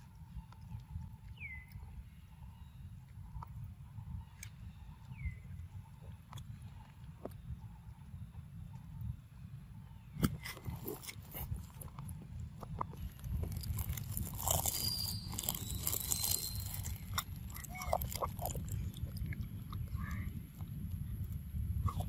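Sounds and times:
steady low rumble: 0:00.0 - 0:22.0
monkey biting and chewing fruit: 0:10.2 - 0:22.0.

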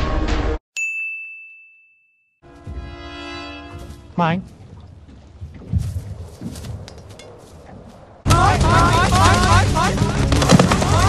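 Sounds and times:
high bell-like ding: 0:00.8 - 0:02.4
sustained chord: 0:02.4 - 0:04.6.

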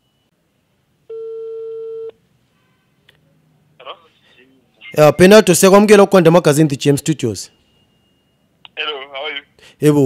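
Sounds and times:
telephone call tone beep: 0:01.1 - 0:02.2.

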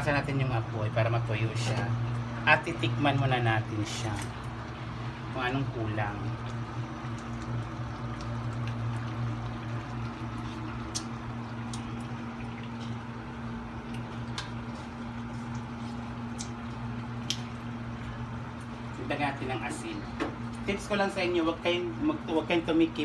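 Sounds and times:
steady low hum: 0:00.0 - 0:23.0
stew bubbling in a wok: 0:01.6 - 0:19.2.

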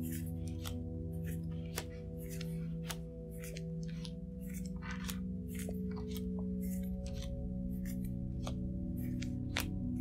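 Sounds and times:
playing cards dealt on table: 0:00.0 - 0:10.0
soft music with steady tones: 0:00.0 - 0:10.0.

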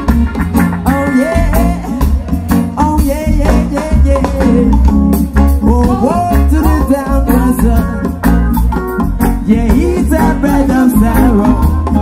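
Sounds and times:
heavy bass: 0:00.0 - 0:12.0
person singing: 0:00.0 - 0:12.0
reggae band playing: 0:00.0 - 0:12.0.

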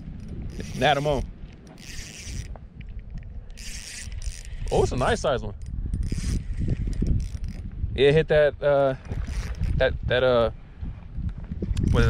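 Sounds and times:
fishing reel whirring: 0:00.0 - 0:07.7, 0:09.1 - 0:09.8, 0:11.8 - 0:12.0.

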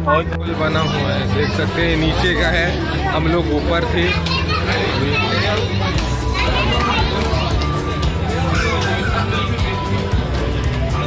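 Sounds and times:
crowd chatter: 0:00.0 - 0:11.0
children's voices: 0:02.9 - 0:10.0.

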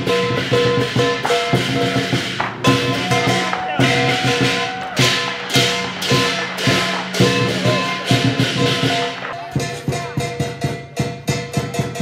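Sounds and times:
cymbal crashes: 0:00.0 - 0:12.0
drum hits: 0:00.0 - 0:12.0.

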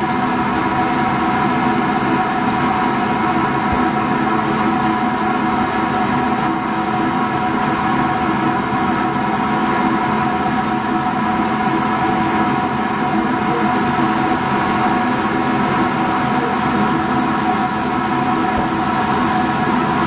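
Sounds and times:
laser cutter machine hum: 0:00.0 - 0:20.0.

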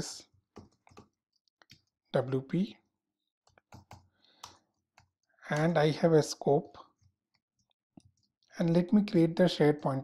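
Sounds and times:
keyboard typing: 0:00.6 - 0:02.3, 0:03.4 - 0:05.7.

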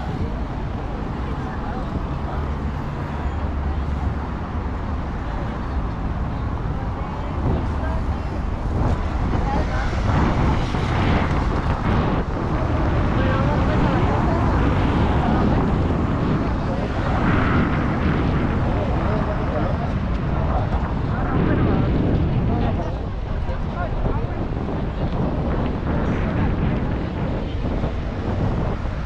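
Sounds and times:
city street traffic: 0:00.0 - 0:29.0
people's voices: 0:00.0 - 0:29.0.

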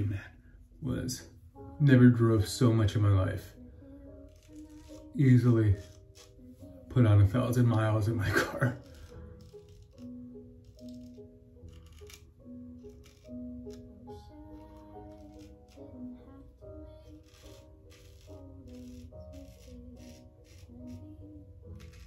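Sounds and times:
background music held notes: 0:00.0 - 0:22.0
razor scraping stubble: 0:04.1 - 0:06.8, 0:07.4 - 0:22.0.

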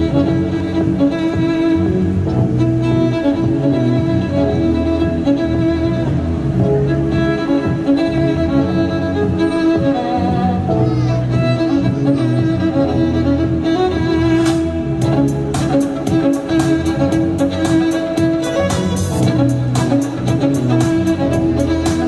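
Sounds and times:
backing track with bass line: 0:00.0 - 0:22.0
solo violin melody: 0:00.0 - 0:22.0
steady beat: 0:00.0 - 0:22.0.

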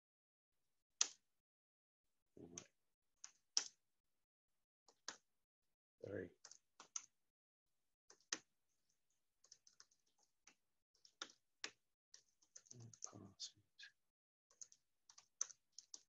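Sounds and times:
keyboard typing: 0:06.4 - 0:07.1, 0:09.4 - 0:13.1, 0:14.5 - 0:16.0.

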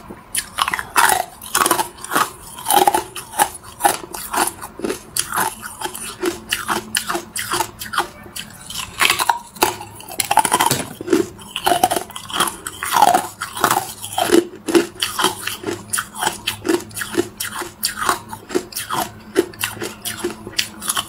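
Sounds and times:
ice being chewed: 0:00.0 - 0:21.0.

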